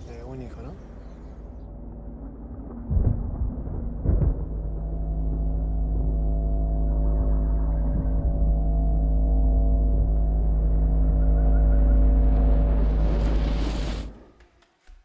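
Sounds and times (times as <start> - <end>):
deep bass rumble: 0.0 - 14.2
held drone chord: 4.4 - 14.2.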